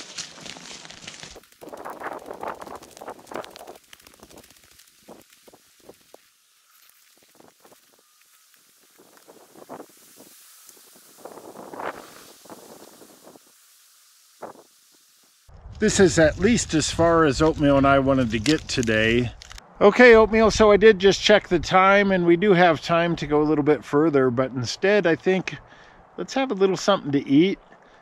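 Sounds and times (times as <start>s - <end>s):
twigs snapping: 0.0s - 12.6s, 15.6s - 19.6s
footsteps through dry pine needles: 0.0s - 19.6s.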